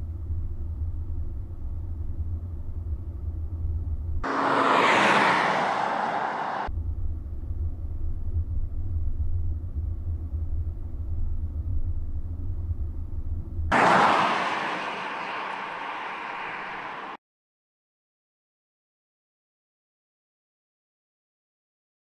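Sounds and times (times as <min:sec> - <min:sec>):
car cabin drone: 0:00.1 - 0:17.2
car passing by: 0:04.2 - 0:06.7, 0:13.7 - 0:17.2.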